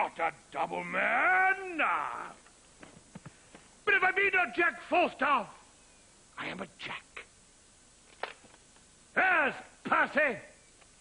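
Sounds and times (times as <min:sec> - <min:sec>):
man speaking: 0:00.0 - 0:02.4, 0:03.8 - 0:05.6, 0:06.4 - 0:07.4, 0:09.1 - 0:10.6.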